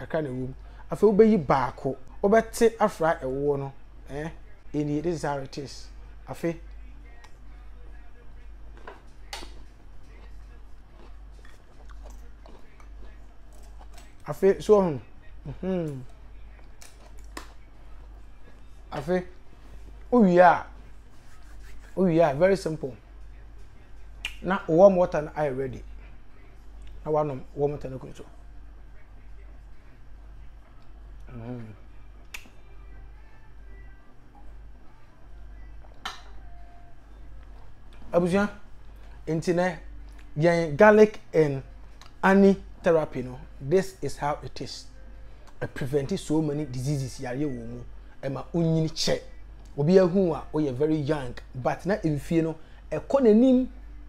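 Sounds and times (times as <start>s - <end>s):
steady low hum: 0.0s - 54.0s
man chewing: 8.7s - 14.2s, 15.6s - 18.2s.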